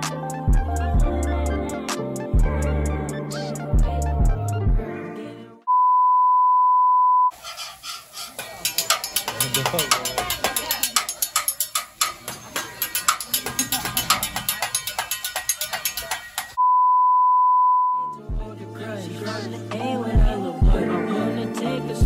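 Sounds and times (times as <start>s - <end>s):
metal spatulas clanking on griddle: 7.6s - 16.6s.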